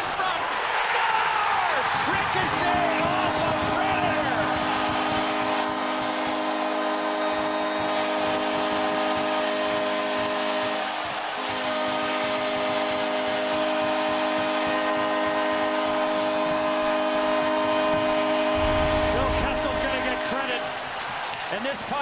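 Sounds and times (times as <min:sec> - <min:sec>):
crowd cheering: 0:00.0 - 0:22.0
goal horn blast: 0:01.9 - 0:21.5.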